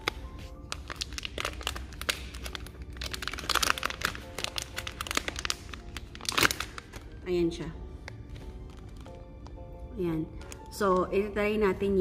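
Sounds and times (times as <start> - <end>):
plastic packet crinkling: 0.0 - 7.2, 8.0 - 9.6
soft background music: 0.0 - 12.0.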